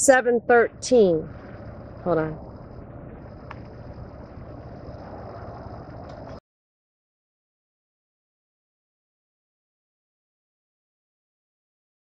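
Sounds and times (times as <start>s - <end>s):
car engine and road noise: 0.0s - 6.4s
thin high whine: 0.0s - 6.4s
light tick: 3.4s - 3.7s.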